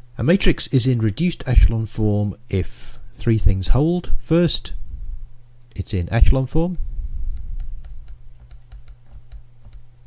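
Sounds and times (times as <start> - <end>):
steady low hum: 0.0 - 10.0
stylus clicking on tablet screen: 7.4 - 9.8.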